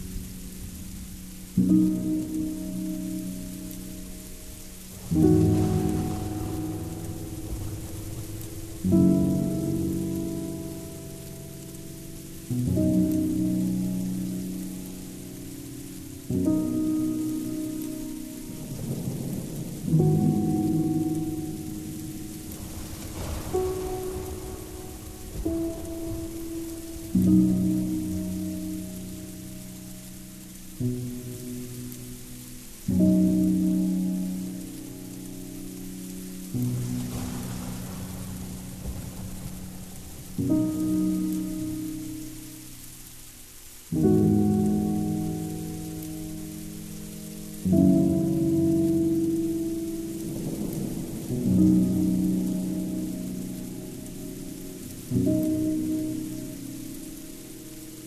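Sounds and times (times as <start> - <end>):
noisy rain-like wash: 0.0 - 58.0.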